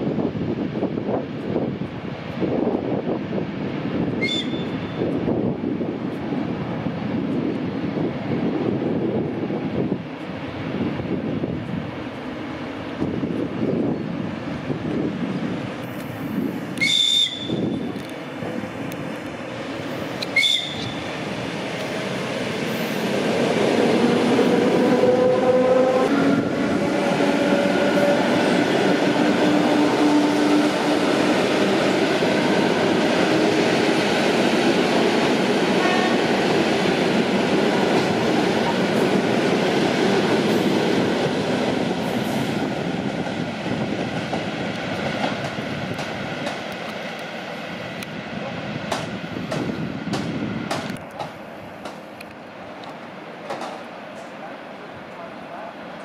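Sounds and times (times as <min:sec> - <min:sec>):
train wheels rushing on rails: 0:00.0 - 0:56.0
train whining tones: 0:15.8 - 0:43.2.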